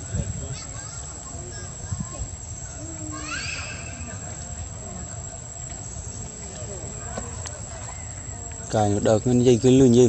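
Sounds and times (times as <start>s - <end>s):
distant voices: 0.0s - 10.0s.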